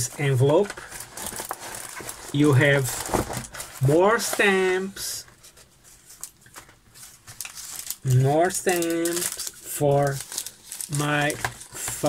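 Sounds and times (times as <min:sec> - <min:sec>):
paper rustling and crinkling: 0:00.0 - 0:12.0.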